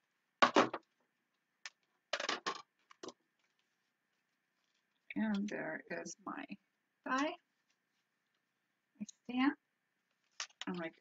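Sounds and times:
plastic plates clattering: 2.2 - 3.1.

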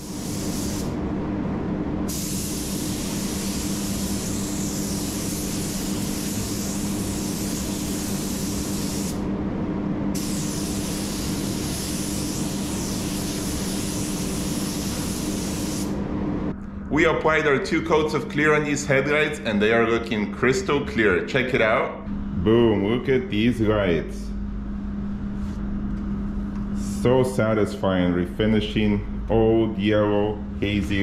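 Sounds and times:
spray gun hissing: 0.0 - 1.0, 2.1 - 9.2, 10.2 - 16.0
steady low hum: 0.0 - 31.0.

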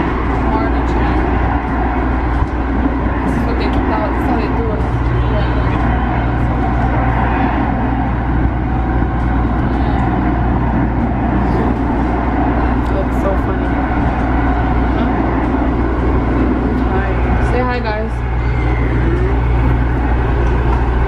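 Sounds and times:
train car rumbling in motion: 0.0 - 21.0.

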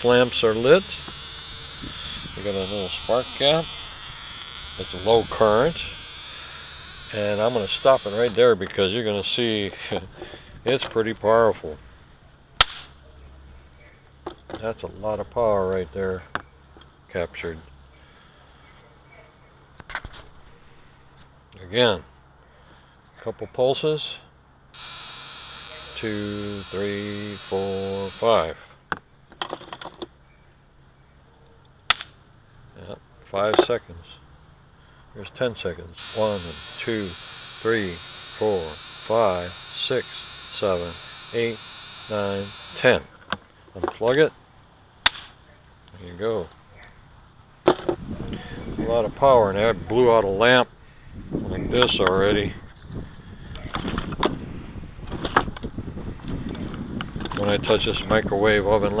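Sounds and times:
electric spark snap: 0.0 - 8.4, 24.8 - 28.5, 36.0 - 43.0.

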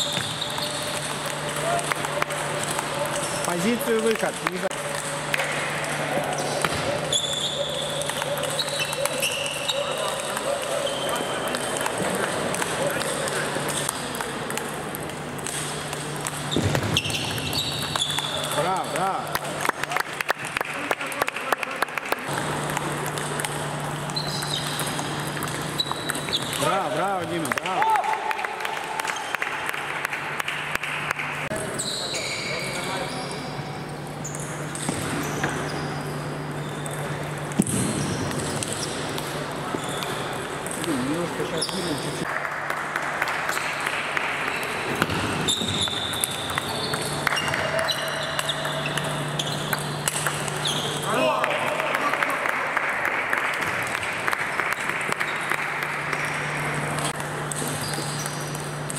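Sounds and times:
voices in hall: 0.0 - 16.7, 26.4 - 35.0, 50.5 - 57.6.

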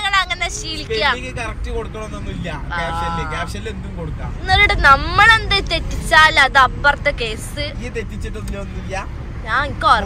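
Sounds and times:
low rumble of road vehicles: 0.0 - 10.0
people talking: 0.0 - 10.0.

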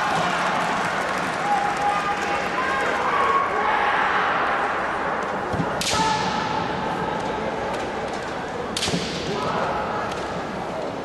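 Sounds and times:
murmur of voices: 1.4 - 11.0.

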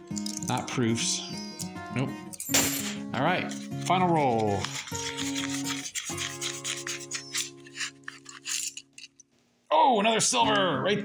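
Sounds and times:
paper wrapper crinkling and tearing: 4.1 - 8.5.

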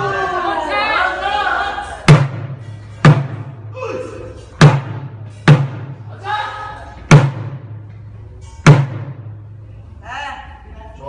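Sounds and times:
drums booming in unison: 1.8 - 6.3, 6.9 - 7.9, 8.6 - 9.6.

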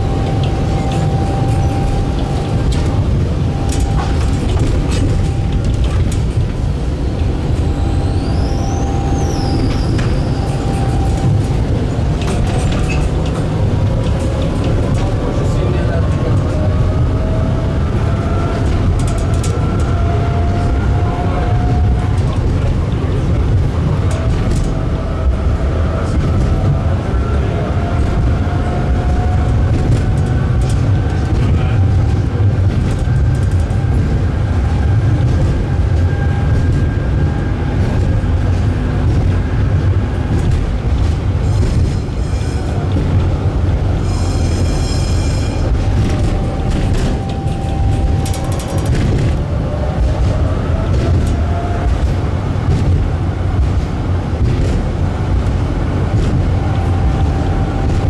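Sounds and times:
tram motor whine rising: 0.0 - 58.0
tram wheels rumbling on rails: 0.0 - 58.0.

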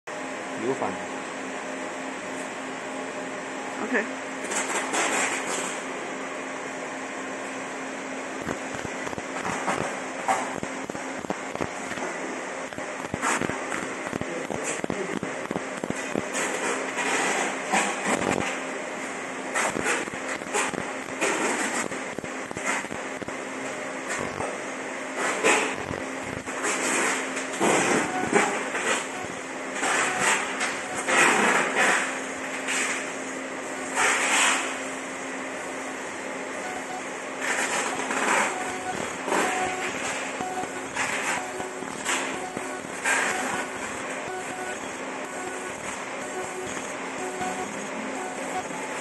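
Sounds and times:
steady machine hum: 0.1 - 49.0
laser marking crackle: 8.4 - 12.1, 12.7 - 18.5, 25.5 - 32.0, 36.6 - 49.0.

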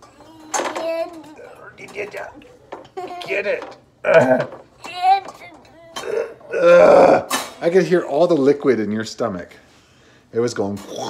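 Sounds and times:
child burping: 4.0 - 4.6, 5.7 - 7.5.

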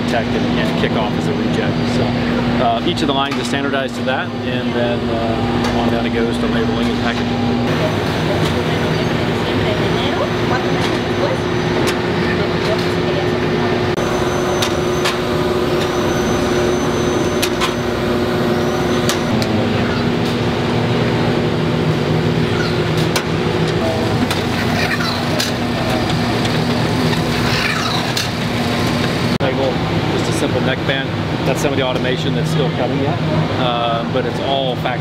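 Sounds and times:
machinery humming: 0.0 - 35.0.

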